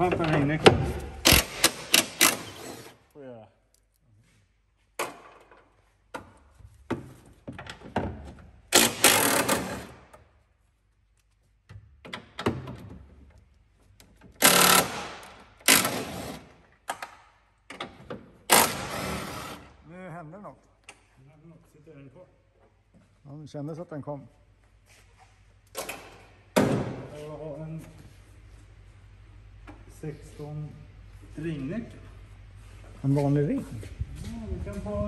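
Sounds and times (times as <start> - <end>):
impact wrench hammering: 0.7 - 2.9, 8.7 - 10.0, 14.4 - 16.5, 18.5 - 19.6.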